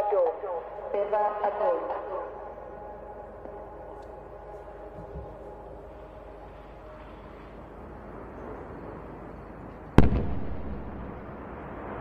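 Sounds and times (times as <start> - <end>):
explosion with rumbling tail: 10.0 - 12.0.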